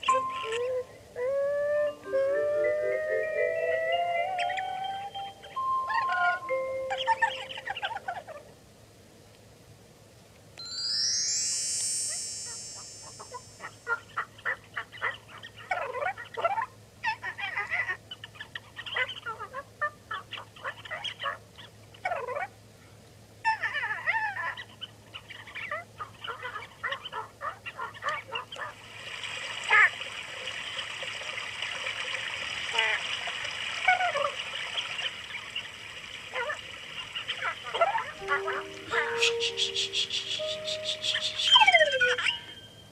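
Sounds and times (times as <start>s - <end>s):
steady hiss: 8.6s - 14.1s, 28.8s - 41.6s
rising sweep of high tones: 10.6s - 13.9s, 38.2s - 42.8s
honking bird-like calls: 37.5s - 42.8s.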